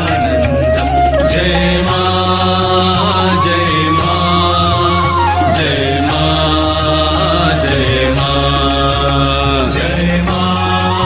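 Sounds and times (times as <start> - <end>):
steady low drone: 0.0 - 11.0
voices chanting hymn: 1.1 - 11.0.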